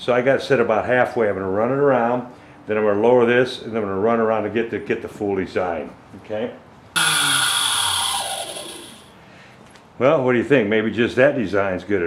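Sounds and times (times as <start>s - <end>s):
router motor winding down: 7.0s - 9.2s.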